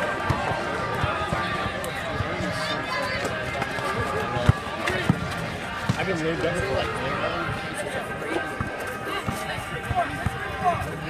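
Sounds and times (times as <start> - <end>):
crowd chatter: 0.0 - 11.0
basketball bouncing on asphalt: 4.4 - 6.1.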